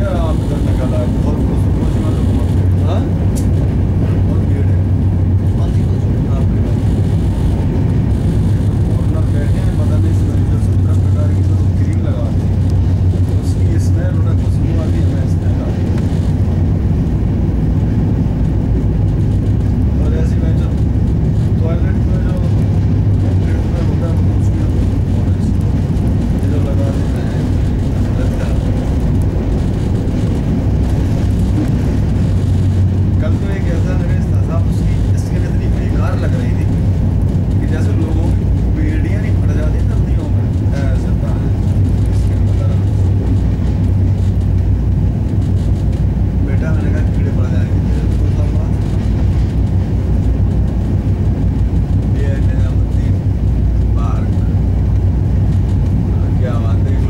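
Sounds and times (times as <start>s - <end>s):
constant low hum: 0.0s - 57.0s
train coach running rumble: 0.0s - 57.0s.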